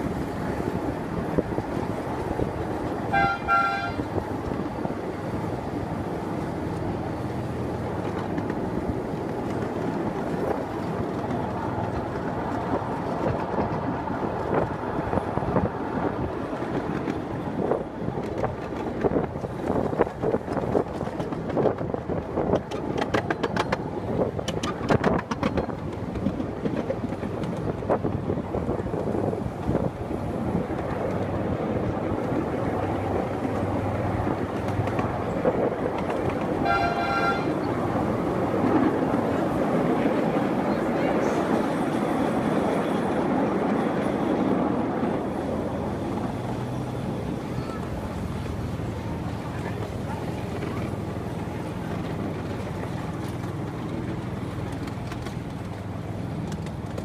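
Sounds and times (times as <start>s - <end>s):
wheel clicks on rail: 0.0s - 40.6s, 41.5s - 57.0s
miniature train wheels rumbling: 0.0s - 57.0s
train toot: 3.0s - 4.2s, 36.4s - 37.9s.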